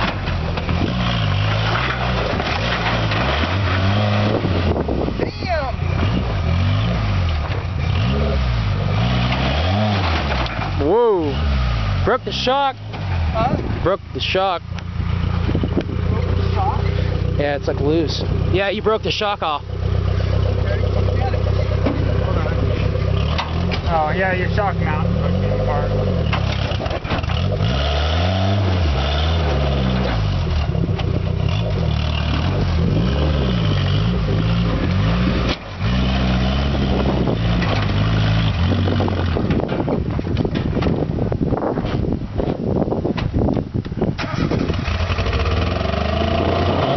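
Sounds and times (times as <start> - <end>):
engine revving: 0.0 - 40.1, 44.2 - 46.9
engine idling: 12.0 - 27.6.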